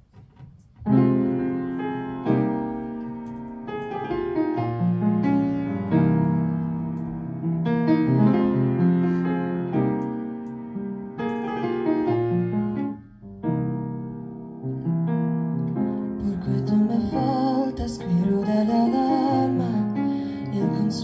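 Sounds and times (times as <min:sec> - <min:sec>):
piano chords and melody: 0:00.0 - 0:21.0.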